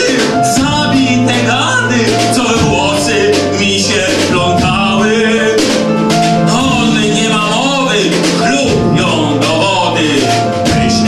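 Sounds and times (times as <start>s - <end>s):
instrumental accompaniment: 0.0s - 11.0s
person singing: 0.0s - 11.0s.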